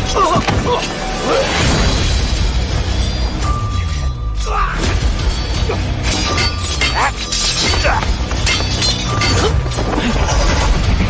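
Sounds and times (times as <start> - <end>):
dramatic battle music: 0.0 - 11.0
sharp clashing shattering hits: 4.8 - 10.0.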